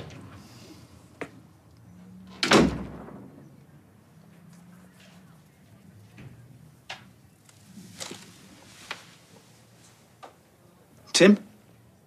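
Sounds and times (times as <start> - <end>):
door slamming shut: 2.3 - 3.4.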